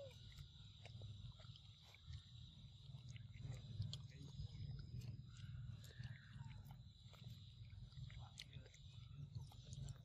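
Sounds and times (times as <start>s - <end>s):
monkey chewing wet clicks: 0.0s - 10.0s.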